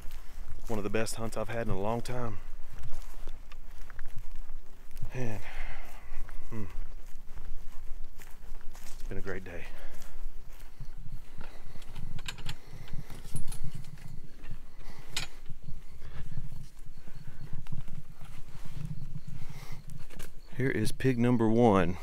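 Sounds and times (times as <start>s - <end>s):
footsteps through grass: 0.0s - 22.0s.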